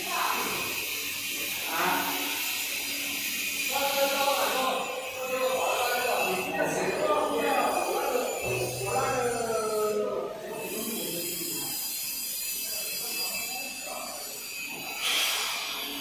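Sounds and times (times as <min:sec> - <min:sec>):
machine hum and whine: 0:00.0 - 0:16.0
steady machinery noise: 0:00.0 - 0:16.0.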